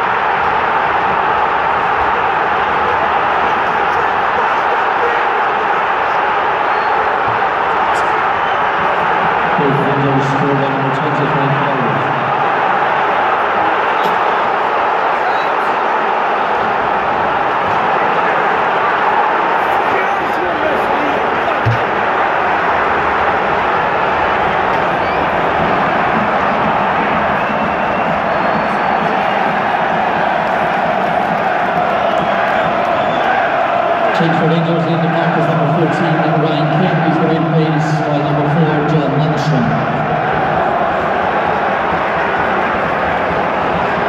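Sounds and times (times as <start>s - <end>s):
stadium crowd cheering: 0.0s - 44.0s.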